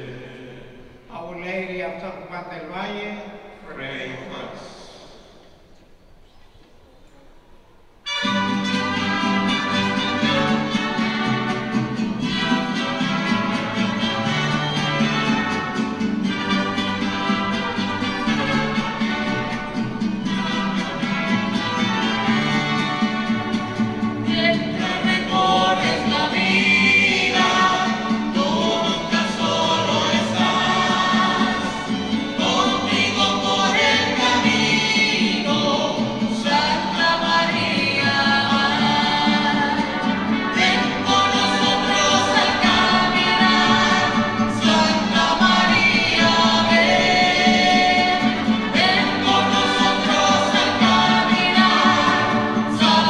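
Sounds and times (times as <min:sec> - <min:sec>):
strings and guitar playing chords: 0:08.0 - 0:53.0
church choir singing a hymn: 0:09.0 - 0:53.0.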